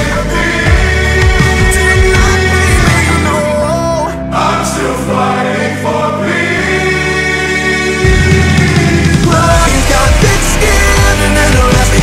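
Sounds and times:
sped up rock song: 0:00.0 - 0:03.6, 0:04.4 - 0:12.0.

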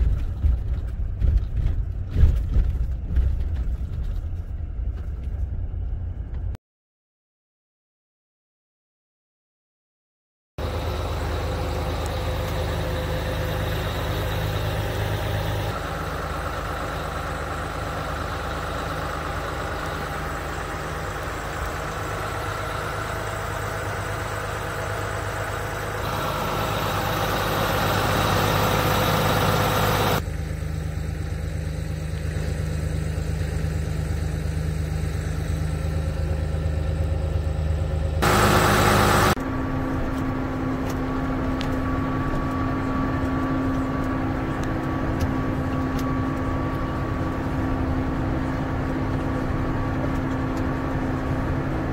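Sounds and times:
tractor diesel engine running: 0:00.0 - 0:06.6, 0:10.6 - 0:51.9.

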